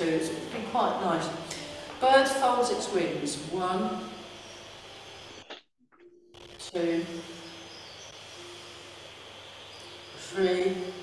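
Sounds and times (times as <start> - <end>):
room and microphone hiss: 0.0 - 5.6, 6.4 - 11.0.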